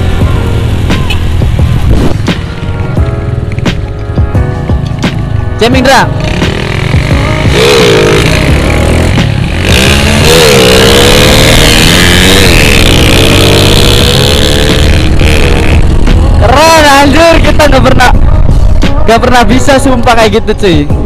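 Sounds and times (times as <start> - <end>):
motorcycle engines running: 0.0 - 20.1
wind rush on microphone: 1.4 - 2.4.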